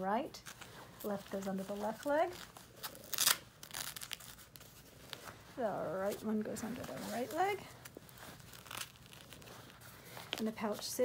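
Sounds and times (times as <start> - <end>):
fabric rustling: 0.0 - 11.0
hook-and-loop strap ripping: 0.4 - 5.3, 6.7 - 10.6.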